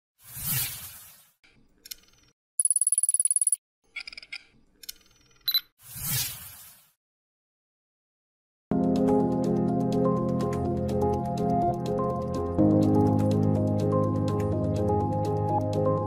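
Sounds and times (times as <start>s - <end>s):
high electronic beeps: 2.6s - 4.1s, 5.4s - 5.7s.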